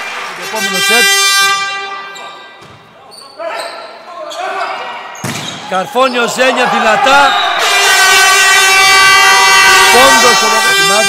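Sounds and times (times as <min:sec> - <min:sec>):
horn sounding steady note: 0:00.4 - 0:02.2, 0:07.6 - 0:11.0.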